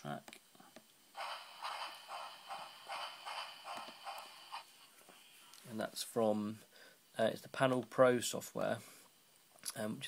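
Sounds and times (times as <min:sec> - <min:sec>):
steam locomotive chuffing from small speaker: 0:01.2 - 0:04.8.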